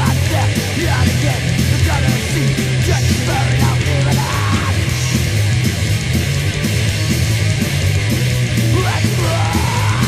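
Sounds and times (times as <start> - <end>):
hoarse shouted vocal: 0.0 - 5.4, 8.6 - 10.0
punk band playing: 0.0 - 10.0.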